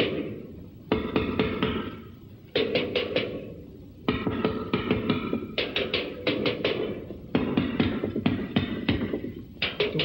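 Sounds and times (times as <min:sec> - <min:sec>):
drum kit beaten in bursts: 0:04.1 - 0:10.0.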